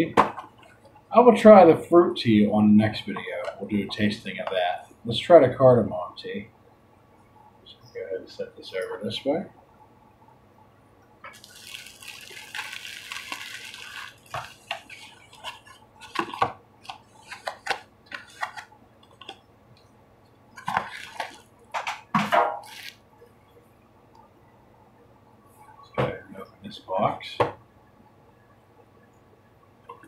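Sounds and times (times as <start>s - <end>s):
plastic wrapping crinkling: 11.3s - 19.4s, 20.6s - 21.5s, 22.6s - 23.0s.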